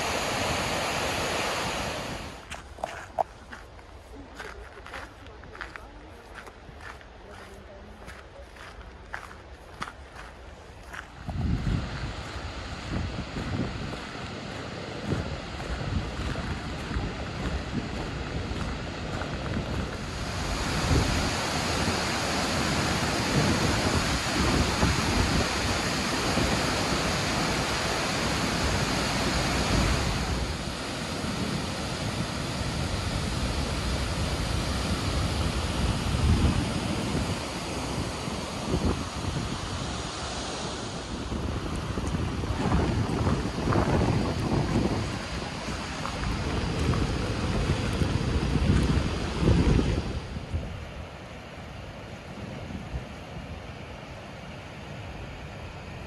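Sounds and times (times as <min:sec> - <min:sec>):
waterfall roar: 0:00.0 - 0:06.2, 0:10.8 - 0:50.6
wind buffeting microphone: 0:01.8 - 0:51.2.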